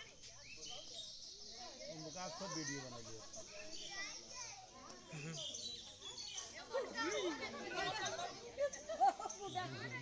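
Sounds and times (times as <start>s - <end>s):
children's voices: 3.5s - 5.4s, 6.3s - 10.0s.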